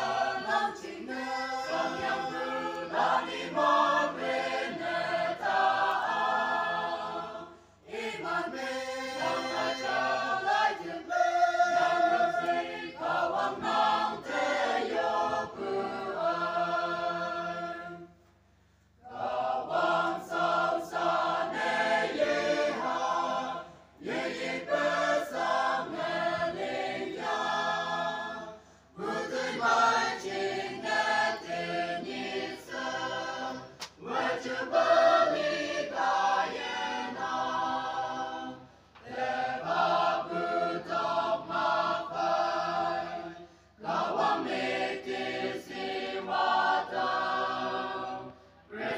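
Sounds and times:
choir singing: 0:00.0 - 0:18.2, 0:19.0 - 0:48.9.

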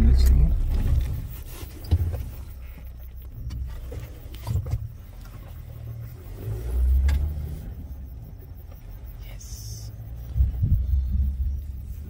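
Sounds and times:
car engine rumbling: 0:00.0 - 0:12.0.

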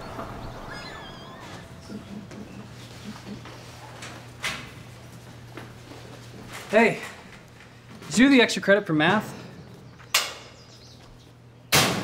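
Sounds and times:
metal locker door slamming: 0:11.7 - 0:12.0.

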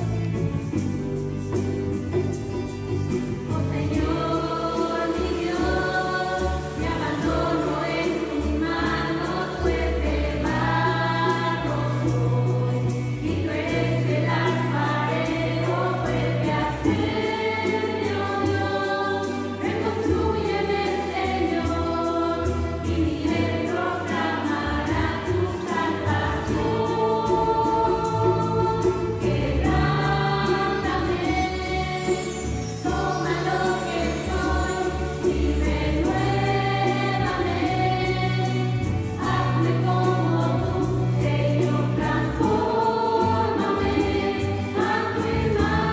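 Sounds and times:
church choir singing: 0:00.0 - 0:00.4, 0:03.3 - 0:45.9
electric bass: 0:00.0 - 0:18.7
hand percussion: 0:00.0 - 0:45.9.

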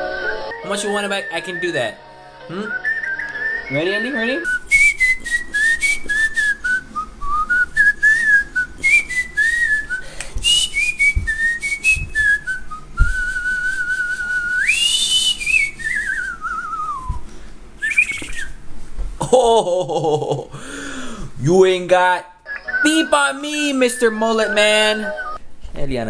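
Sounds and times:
man whistling a tune: 0:00.5 - 0:01.9, 0:02.5 - 0:17.2, 0:17.8 - 0:18.6, 0:23.0 - 0:25.4
dull thumps: 0:10.4 - 0:12.4, 0:13.0 - 0:13.4.

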